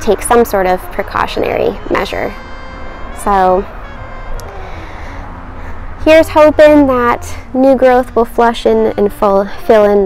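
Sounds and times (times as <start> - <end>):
low steady rumble: 0.0 - 9.8.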